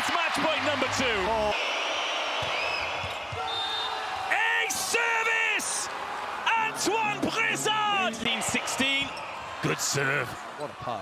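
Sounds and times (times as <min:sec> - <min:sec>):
arena crowd noise: 0:00.0 - 0:11.0
loud shouting voices: 0:03.4 - 0:10.6.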